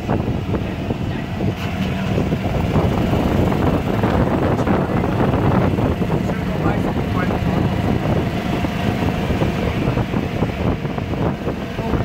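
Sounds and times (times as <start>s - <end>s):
vehicle rumble: 0.0s - 12.0s
wind rushing over microphone: 0.0s - 12.0s.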